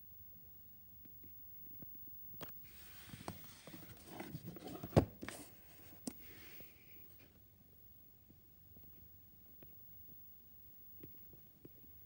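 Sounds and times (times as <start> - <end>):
plastic case rubbing and scraping: 2.7 - 5.9.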